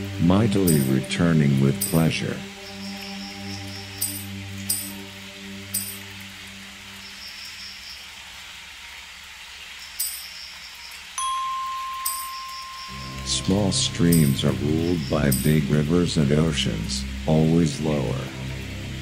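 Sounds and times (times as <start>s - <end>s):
low held synth chord: 0.0s - 6.7s, 11.2s - 19.0s
soft rain-like hiss: 0.0s - 19.0s
steady high tone: 0.4s - 5.0s, 11.2s - 19.0s
light high chime strikes: 0.6s - 1.1s, 1.8s - 2.1s, 11.2s - 15.9s.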